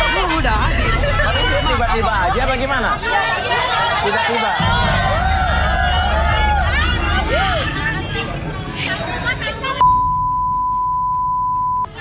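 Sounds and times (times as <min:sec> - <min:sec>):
censor bleep tone: 0:09.8 - 0:11.9.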